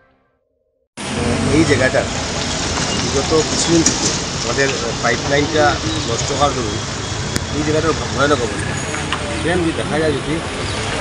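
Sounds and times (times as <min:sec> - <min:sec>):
road traffic engines: 0:01.0 - 0:11.0.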